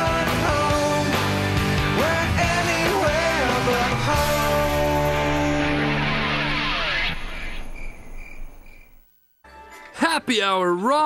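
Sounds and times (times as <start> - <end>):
crickets chirping: 6.8 - 9.4.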